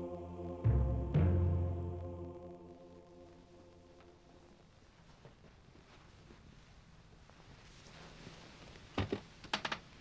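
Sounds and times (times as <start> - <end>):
rustling: 3.2 - 10.0.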